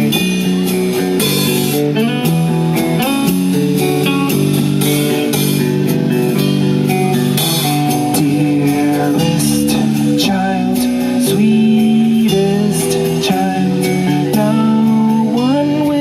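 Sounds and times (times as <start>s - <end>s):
distorted electric guitar chords: 0.0s - 16.0s
drum kit with cymbals: 0.0s - 16.0s.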